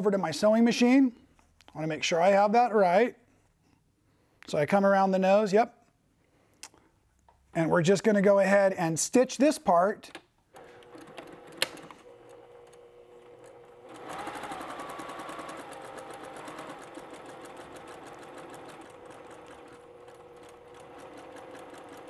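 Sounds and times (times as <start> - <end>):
sewing machine stitching: 10.6 - 22.0.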